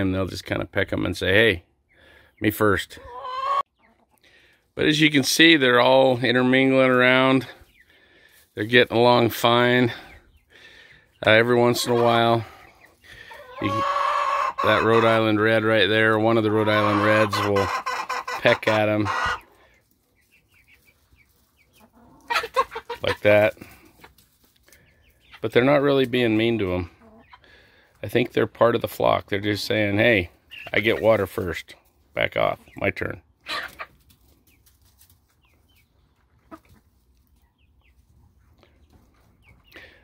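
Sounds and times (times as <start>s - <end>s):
chicks peeping: 0.0s - 40.0s.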